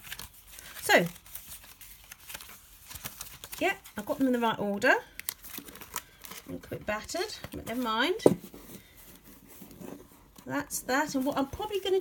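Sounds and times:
book handling: 0.0 - 4.0, 5.2 - 10.5
book knocking on wooden table: 8.2 - 8.5.

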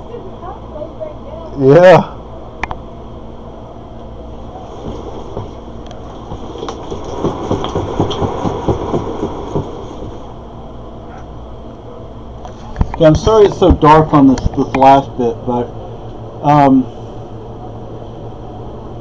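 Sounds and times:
steady low hum: 0.0 - 19.0
cat wheel thumps: 4.8 - 10.3.

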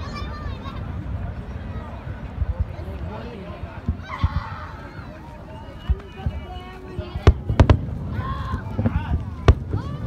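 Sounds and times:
fireworks bursting: 5.8 - 10.0.

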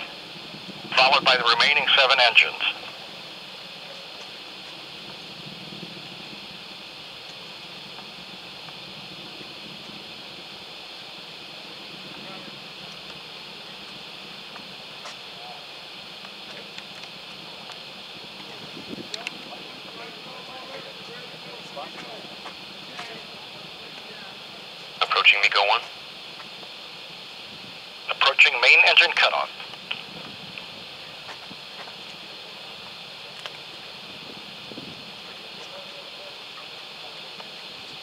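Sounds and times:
steady hiss: 0.0 - 38.0
faint scattered voices: 35.2 - 38.0.

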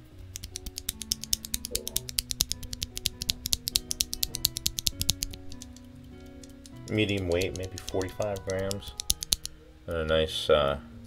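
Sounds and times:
background music: 0.0 - 11.0
mechanical keyboard switch clicking: 0.3 - 9.5.

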